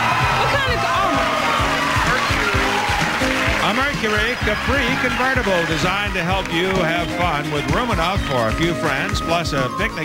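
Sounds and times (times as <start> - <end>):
audience cheering: 0.0 - 10.0
upbeat game show music: 0.0 - 10.0.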